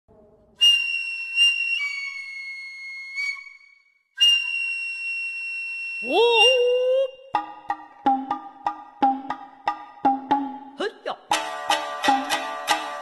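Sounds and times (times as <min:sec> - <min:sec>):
shrill bamboo flute: 0:00.6 - 0:07.3.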